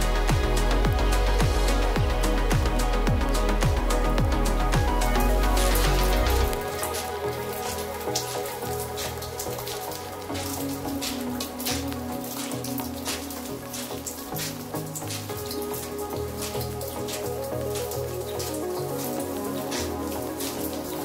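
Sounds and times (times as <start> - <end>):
rain pattering: 0.0 - 21.0
soft background music: 0.0 - 21.0.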